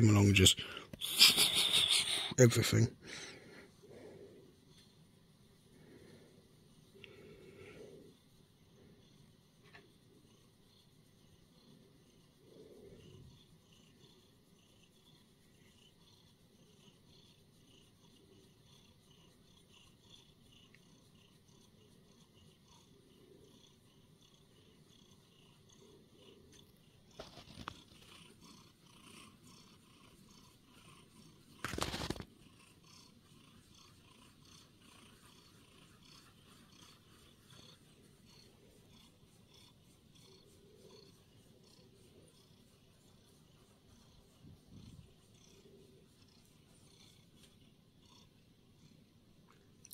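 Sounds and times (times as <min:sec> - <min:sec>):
cat purring: 0:00.0 - 0:49.9
rubbing noises: 0:27.0 - 0:47.6.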